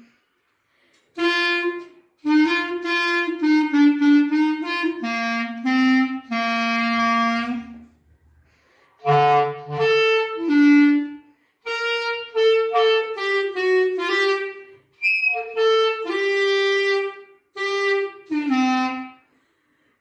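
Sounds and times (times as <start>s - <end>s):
solo clarinet melody: 1.1s - 8.3s, 8.9s - 19.4s.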